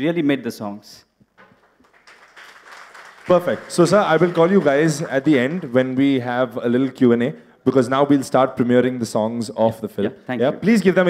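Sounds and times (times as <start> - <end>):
scattered hand clapping: 1.4 - 6.2.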